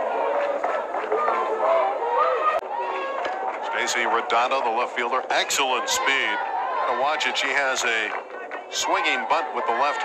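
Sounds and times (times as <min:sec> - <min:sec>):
calls and shouts: 0:00.0 - 0:10.0
crowd chatter: 0:00.0 - 0:10.0.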